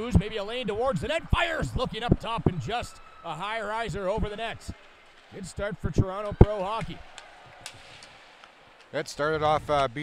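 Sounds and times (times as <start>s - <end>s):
crowd and rink hum: 0.0s - 10.0s
sticks and puck clicks on ice: 6.2s - 8.9s.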